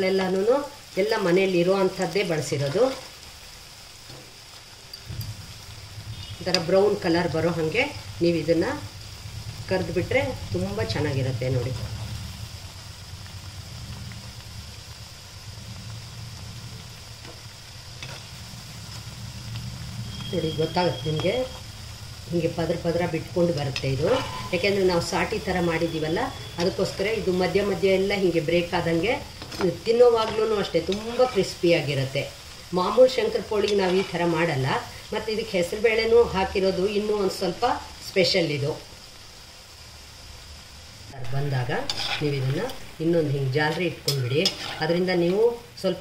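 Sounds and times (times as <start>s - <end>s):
oil bubbling and sizzling: 0.0s - 46.0s
slotted spoon stirring: 30.2s - 31.6s, 33.6s - 34.4s, 41.6s - 42.8s, 44.0s - 45.1s
person talking: 41.1s - 46.0s.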